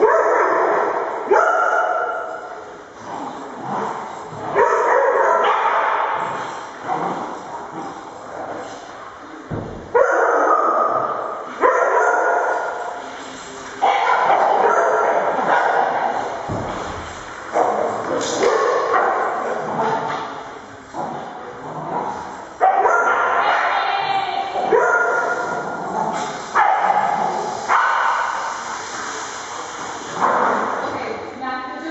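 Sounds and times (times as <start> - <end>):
dogs barking and yipping: 0.0 - 2.6, 3.7 - 7.6, 9.9 - 13.1, 13.8 - 20.3, 22.0 - 28.4.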